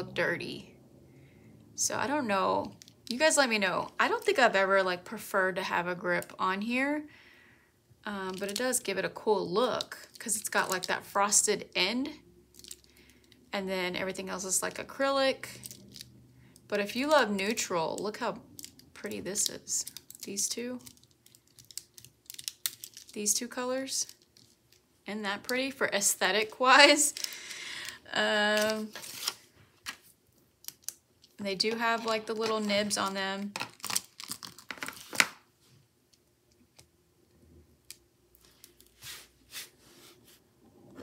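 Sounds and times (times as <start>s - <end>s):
plastic pens clicking together: 18.5s - 23.1s, 30.6s - 31.0s.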